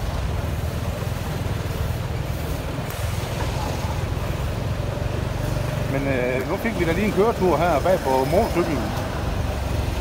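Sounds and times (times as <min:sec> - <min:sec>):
motorcycle engine rumble: 0:00.0 - 0:10.0
road and traffic noise: 0:00.0 - 0:10.0.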